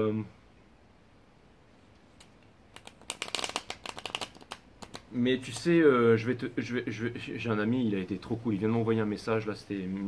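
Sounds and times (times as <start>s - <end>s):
cards being shuffled: 2.2s - 5.8s.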